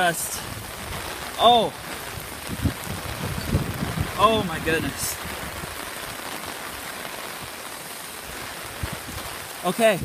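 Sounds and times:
torrential rain pouring: 0:00.0 - 0:10.0.

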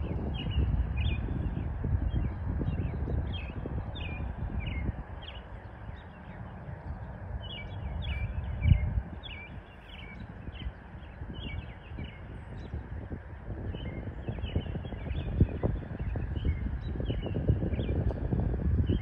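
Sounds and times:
wind rumble on microphone: 0:00.0 - 0:19.0
birds chirping: 0:00.1 - 0:19.0.

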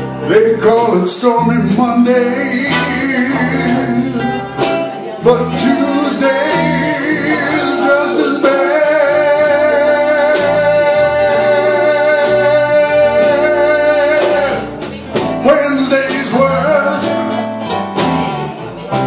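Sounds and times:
acoustic guitars and bass: 0:00.0 - 0:19.0
man singing blues: 0:00.0 - 0:19.0.

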